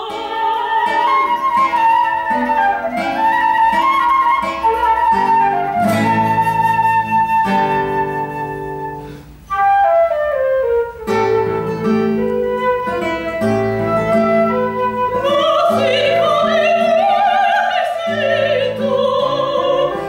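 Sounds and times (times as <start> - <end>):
classical guitar: 0.0 - 20.0
flute melody: 0.0 - 20.0.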